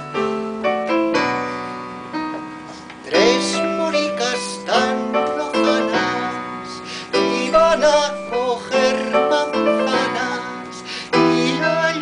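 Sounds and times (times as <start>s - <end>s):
piano playing slow chords: 0.0s - 12.0s
person singing: 3.0s - 12.0s.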